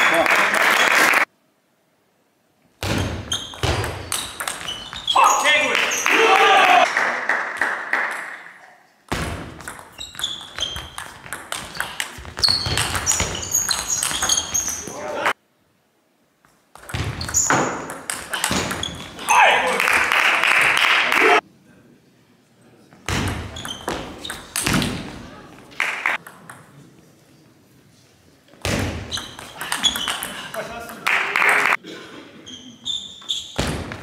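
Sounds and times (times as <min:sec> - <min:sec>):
crowd cheering: 0:00.0 - 0:01.3, 0:05.4 - 0:08.6, 0:19.3 - 0:21.4, 0:31.0 - 0:31.8.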